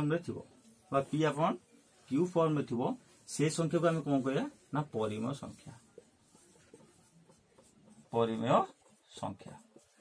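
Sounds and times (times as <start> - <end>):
marker pen on whiteboard: 0.0 - 10.0.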